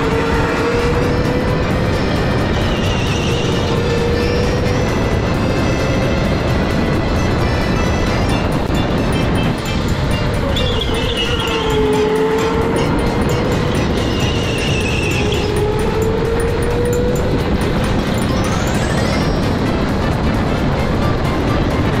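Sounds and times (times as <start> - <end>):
electric go-kart motor whining: 0.0 - 20.4
tyre and wind rumble: 0.0 - 22.0.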